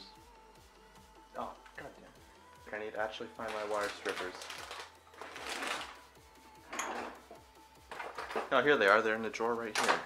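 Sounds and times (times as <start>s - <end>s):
quiet background music: 0.0s - 10.0s
rustling and clattering: 3.8s - 6.0s, 6.7s - 8.6s.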